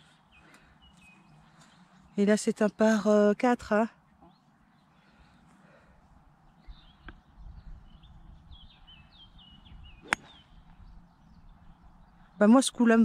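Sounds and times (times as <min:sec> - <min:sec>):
golf club striking ball: 0:10.0 - 0:10.4.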